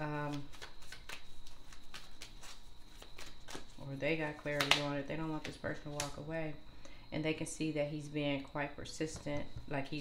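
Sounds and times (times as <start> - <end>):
cards being shuffled: 0.0 - 3.8, 4.4 - 6.2.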